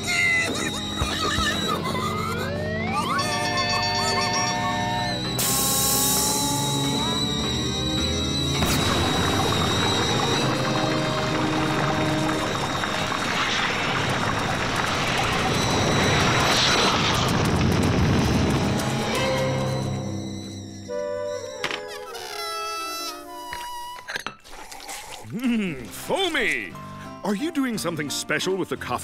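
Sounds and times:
background music: 0.0s - 14.4s, 18.2s - 24.2s, 25.3s - 29.0s
thin buzzing whine: 0.4s - 24.2s
cartoon coffee pouring into cup: 8.6s - 16.6s.

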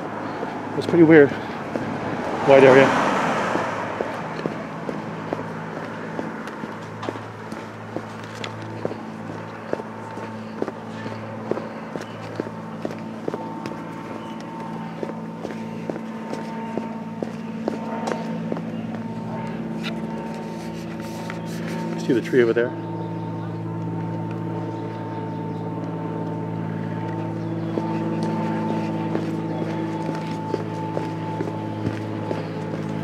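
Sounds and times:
footsteps walking: 0.0s - 2.4s, 3.0s - 22.1s, 27.0s - 33.0s
low hum: 0.0s - 33.0s.

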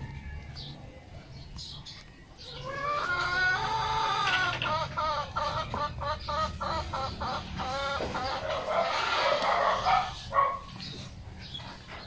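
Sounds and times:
rooster crowing: 0.0s - 0.8s.

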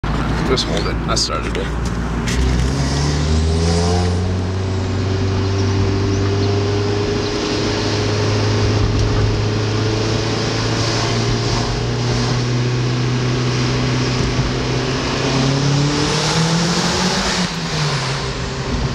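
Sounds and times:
car engine revving: 0.0s - 18.9s.

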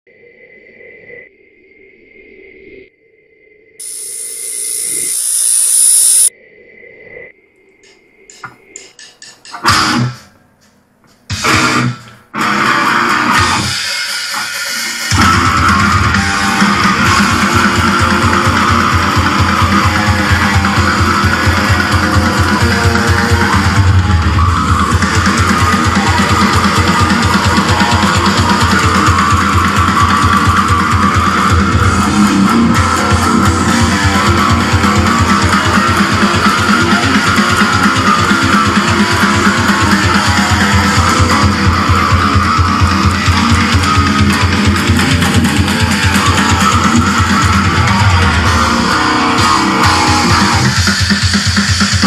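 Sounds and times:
steady high tone: 0.2s - 9.1s
burst of static hiss: 3.8s - 6.3s
distorted electric guitar chugs: 8.3s - 10.3s, 11.3s - 52.0s.

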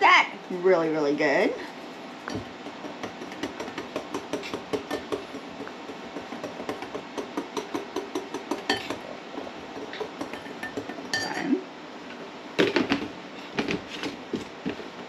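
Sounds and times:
whisk clinking against bowl: 7.6s - 9.0s, 9.8s - 11.5s.

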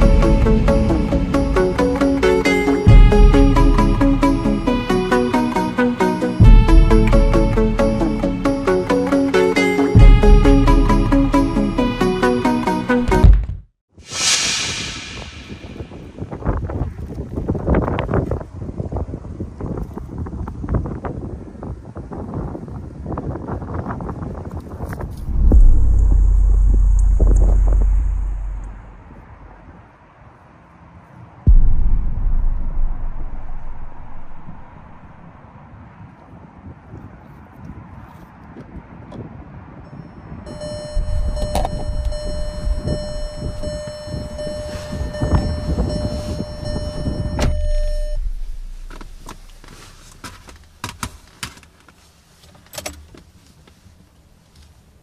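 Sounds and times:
loud low rumble: 0.0s - 5.0s, 14.1s - 16.6s, 25.2s - 29.7s, 31.5s - 35.4s, 40.5s - 50.8s
wind buffeting microphone: 14.2s - 29.9s, 31.5s - 51.2s
faint high whine: 40.0s - 49.8s
electronic warning tone: 40.5s - 49.0s
car door opening: 40.6s - 51.8s
knocks and rustles: 48.6s - 53.7s.

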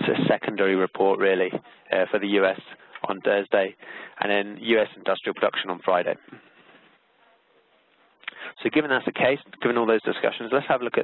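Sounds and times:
man speaking: 0.0s - 6.4s, 8.4s - 11.0s
faint steady hiss: 0.0s - 11.0s.

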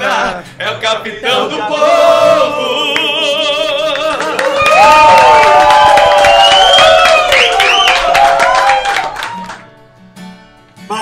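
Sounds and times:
person singing with whoops: 2.4s - 9.6s
clapping: 3.7s - 9.7s.

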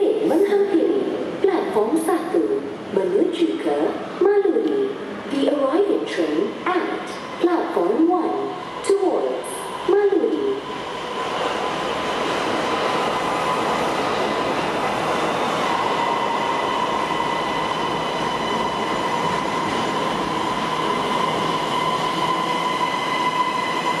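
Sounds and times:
high train whine: 0.0s - 24.0s
metro train rolling rumble: 0.0s - 24.0s.

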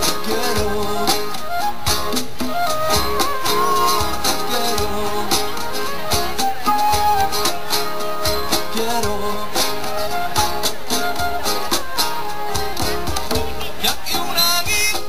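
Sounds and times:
hand drums: 0.0s - 15.0s
strummed acoustic guitars: 0.0s - 15.0s.

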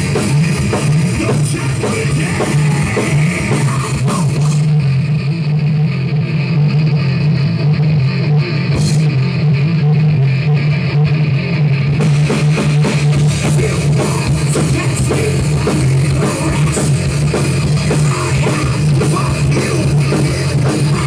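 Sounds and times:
heavy metal band playing: 0.0s - 21.0s.

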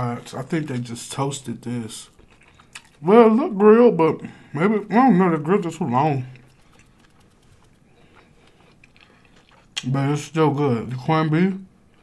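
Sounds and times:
faint chewing mouth clicks: 2.1s - 3.0s, 6.3s - 9.9s.

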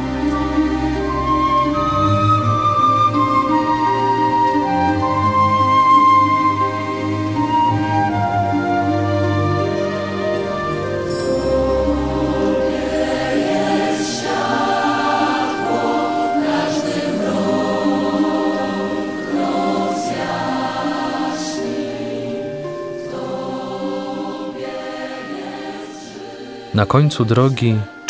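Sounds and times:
choir singing long held notes: 0.0s - 28.0s.

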